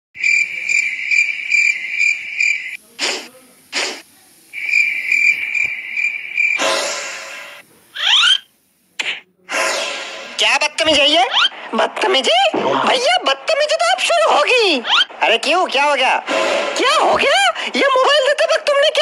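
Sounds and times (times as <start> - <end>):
hissing bursts: 0.2 - 10.4.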